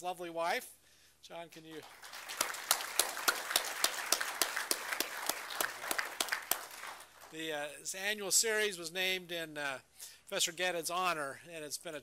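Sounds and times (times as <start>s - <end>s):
audience applauding: 1.8s - 7.4s.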